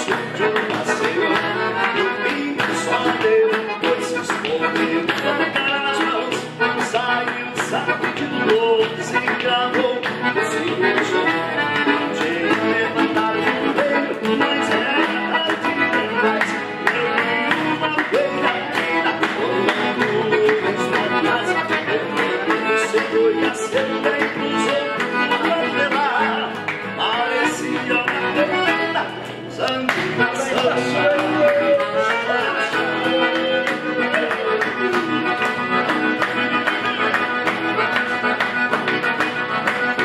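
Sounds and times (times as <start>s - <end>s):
accordion dance tune: 0.0s - 40.0s
rhythmic hand clapping: 0.0s - 40.0s
strummed acoustic guitar: 0.0s - 40.0s.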